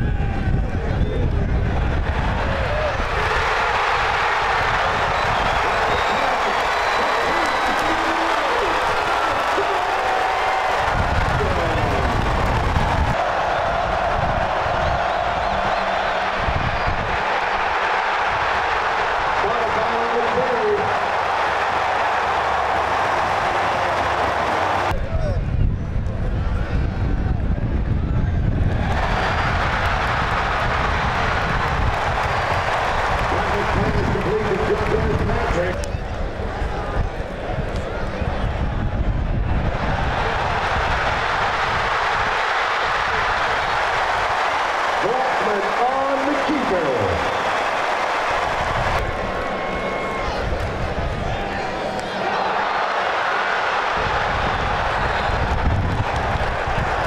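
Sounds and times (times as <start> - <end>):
stadium crowd cheering and shouting: 0.0 - 57.0
people clapping: 2.6 - 25.0, 28.7 - 35.9, 39.9 - 50.8, 51.8 - 57.0.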